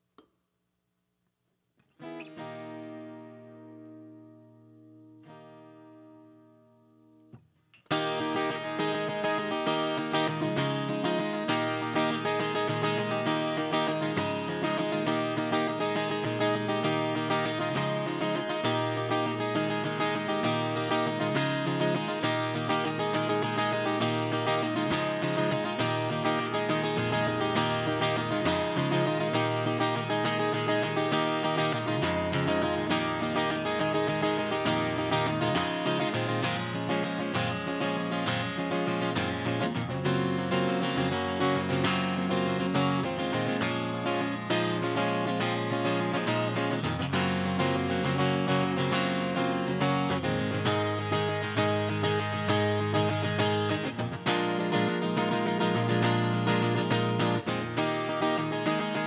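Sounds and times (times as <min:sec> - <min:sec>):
electric guitar strumming chords: 0:02.0 - 0:06.5, 0:07.8 - 0:59.0.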